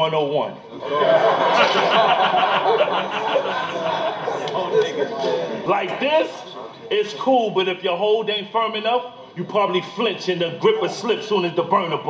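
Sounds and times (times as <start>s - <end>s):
crowd reacting: 0.8s - 6.8s
man laughing: 1.1s - 4.4s.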